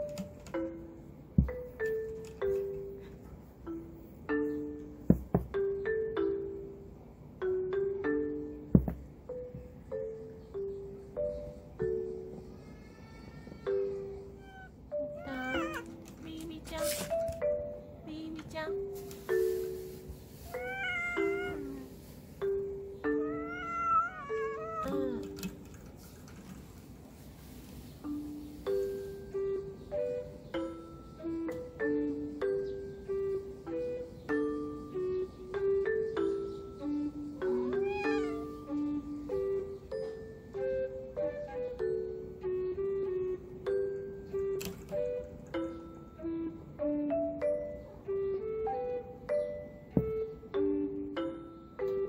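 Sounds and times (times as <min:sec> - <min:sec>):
light background music: 0:00.0 - 0:52.0
cat meowing: 0:14.3 - 0:16.0, 0:20.5 - 0:22.0, 0:23.1 - 0:25.3, 0:37.5 - 0:38.6.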